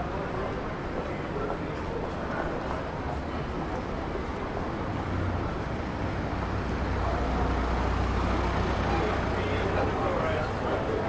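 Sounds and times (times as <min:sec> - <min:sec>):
passers-by talking: 0:00.0 - 0:11.0
street noise: 0:00.0 - 0:11.0.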